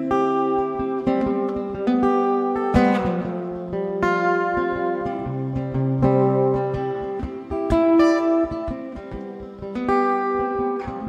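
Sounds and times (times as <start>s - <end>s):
acoustic guitar picking: 0.0s - 11.0s.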